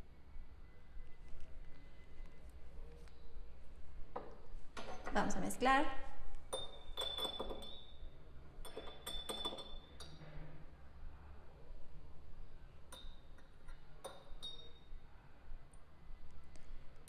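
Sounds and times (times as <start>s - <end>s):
metal spoon clinking against glass: 6.5s - 10.2s, 12.9s - 15.0s.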